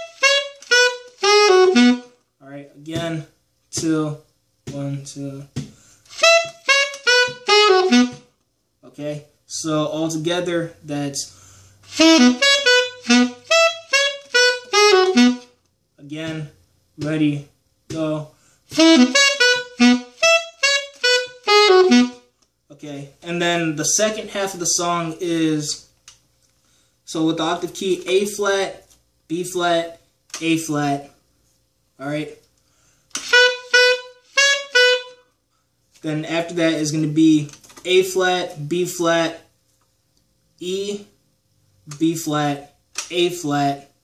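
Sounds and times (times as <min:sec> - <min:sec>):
alto saxophone riff: 0:00.0 - 0:02.2, 0:05.6 - 0:08.4, 0:11.8 - 0:15.6, 0:18.7 - 0:22.4, 0:33.1 - 0:35.4.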